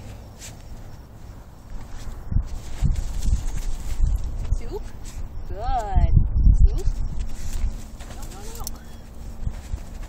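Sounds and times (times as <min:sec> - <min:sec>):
dog paws digging in dirt: 0:00.0 - 0:05.9, 0:06.9 - 0:10.0.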